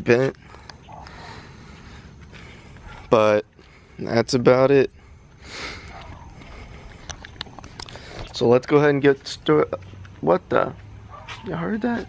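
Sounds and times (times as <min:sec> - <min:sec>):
low outdoor rumble: 0:00.0 - 0:12.0
footstep taps: 0:05.3 - 0:12.0.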